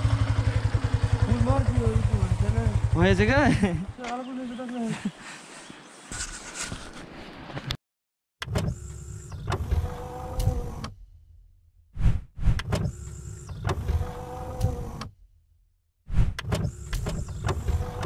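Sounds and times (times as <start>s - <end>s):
motorised sliding whir: 8.5s - 11.0s, 12.4s - 15.1s, 16.2s - 18.0s.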